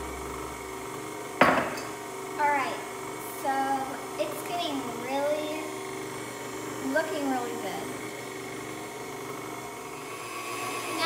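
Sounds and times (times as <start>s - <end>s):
stand mixer running: 0.0s - 11.0s.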